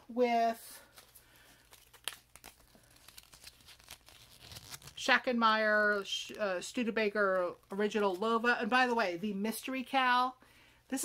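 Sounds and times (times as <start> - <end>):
paper label crinkling: 0.9 - 6.4.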